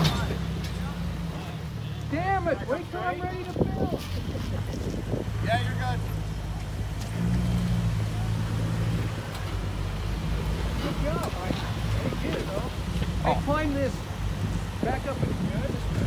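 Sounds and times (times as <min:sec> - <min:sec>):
car engine running at low revs: 0:00.0 - 0:16.0.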